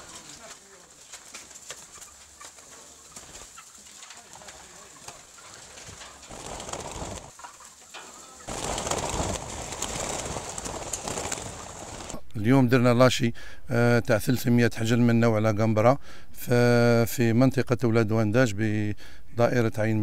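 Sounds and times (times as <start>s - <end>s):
birds cooing: 0.0s - 12.2s.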